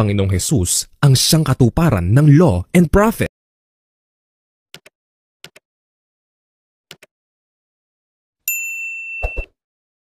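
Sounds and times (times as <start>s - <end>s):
notification bell ding: 8.5s - 9.5s.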